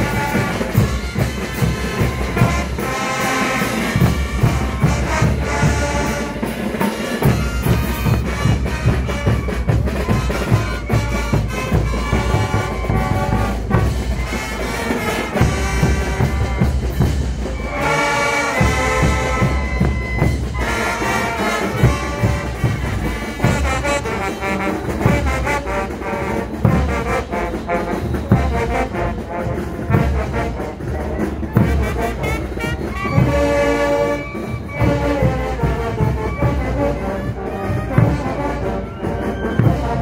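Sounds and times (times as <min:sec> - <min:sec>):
steady drum beat: 0:00.0 - 0:38.9
marching brass band playing: 0:00.0 - 0:40.0.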